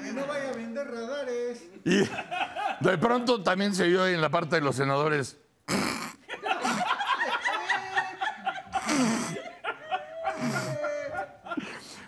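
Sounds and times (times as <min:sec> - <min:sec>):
person laughing in snickers: 0:08.7 - 0:12.0.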